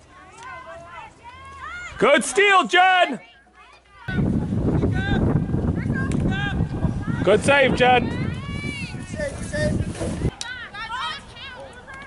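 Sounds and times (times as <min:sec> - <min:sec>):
voices shouting outdoors: 0:00.0 - 0:12.0
low rumble of wind: 0:03.6 - 0:12.0.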